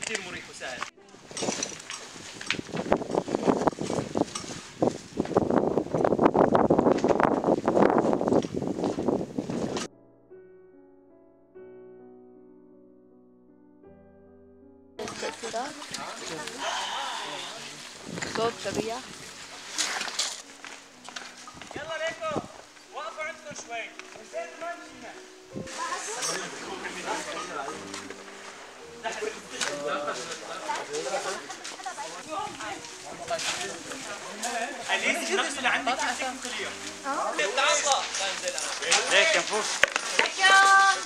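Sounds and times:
rustling of clothing and gear: 0:00.0 - 0:09.9, 0:15.0 - 0:41.0
wind on microphone: 0:01.1 - 0:09.9, 0:15.0 - 0:19.7, 0:21.5 - 0:22.7, 0:25.5 - 0:25.8, 0:32.2 - 0:33.7
indistinct voices: 0:15.0 - 0:19.1
people's voices outdoors: 0:15.0 - 0:41.0.

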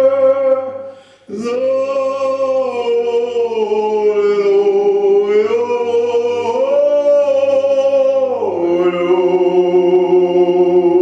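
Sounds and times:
men singing unaccompanied: 0:00.0 - 0:11.0.

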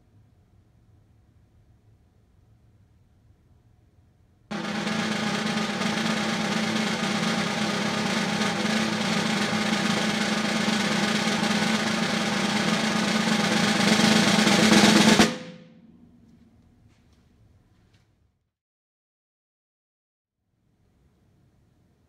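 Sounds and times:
snare drum roll: 0:04.5 - 0:16.0.

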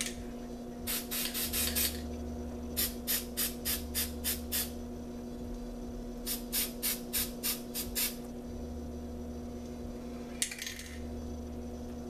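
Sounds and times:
spray paint can hissing: 0:00.9 - 0:02.0, 0:02.8 - 0:04.8, 0:06.3 - 0:08.2.

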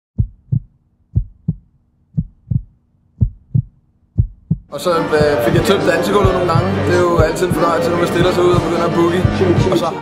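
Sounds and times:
heartbeat thumps: 0:00.2 - 0:09.8.

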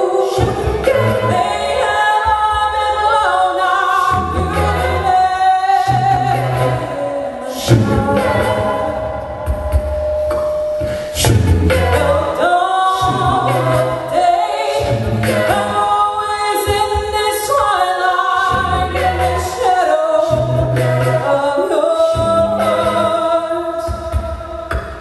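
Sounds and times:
a cappella group singing: 0:00.0 - 0:25.0.

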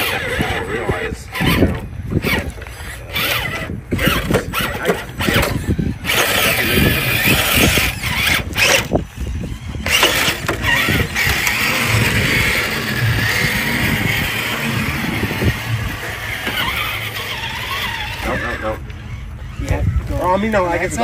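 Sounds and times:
electric motor whining: 0:00.0 - 0:21.0
rough rumbling handling noise: 0:00.0 - 0:21.0.

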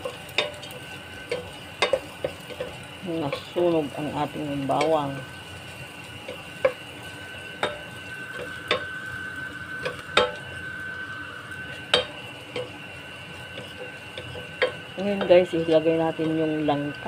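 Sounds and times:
faint sizzling in oil: 0:00.0 - 0:17.0
spatula knocking against pot: 0:09.8 - 0:10.4, 0:11.9 - 0:12.7.

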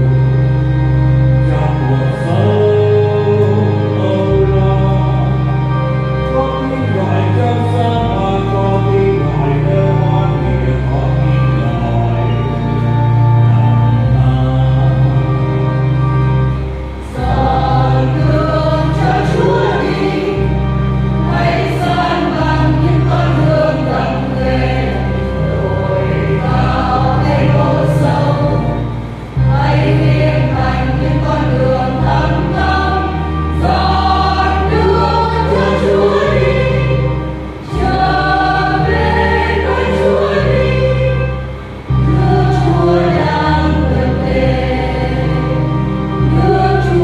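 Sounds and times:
church choir singing a hymn: 0:00.0 - 0:47.0
sustained low accompaniment notes: 0:00.0 - 0:47.0.

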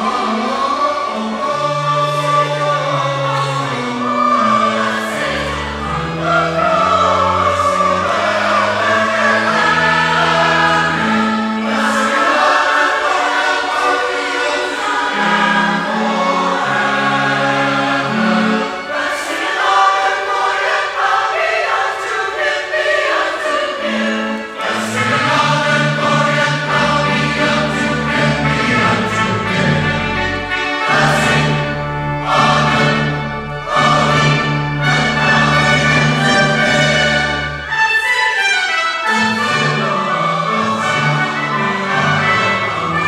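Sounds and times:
choir singing: 0:00.0 - 0:43.0
instrumental accompaniment: 0:00.0 - 0:43.0.

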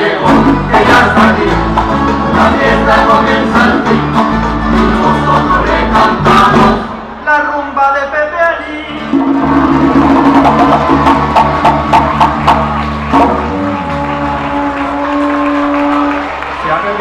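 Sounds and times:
folk band playing: 0:00.0 - 0:07.2, 0:08.9 - 0:16.6.

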